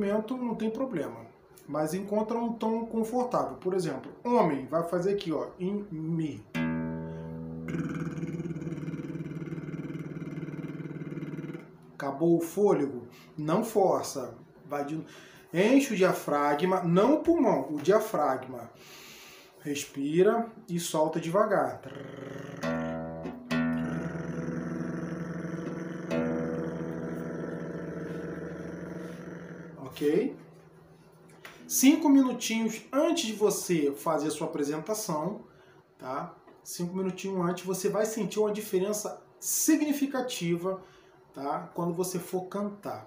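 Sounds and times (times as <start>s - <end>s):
acoustic guitar chord ringing: 6.4s - 12.0s, 22.4s - 32.5s
man doing lip trill: 6.6s - 12.0s, 21.8s - 30.6s.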